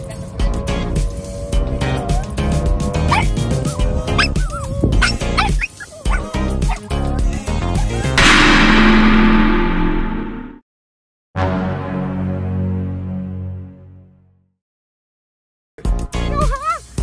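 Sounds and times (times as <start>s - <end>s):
small dogs yipping and whining: 3.1s - 6.9s
crash sound effect: 8.2s - 10.6s.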